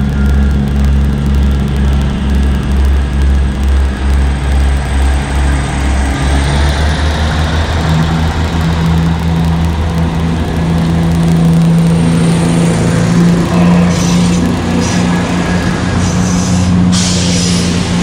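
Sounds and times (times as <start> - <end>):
diesel train engine throbbing: 0.0 - 18.0.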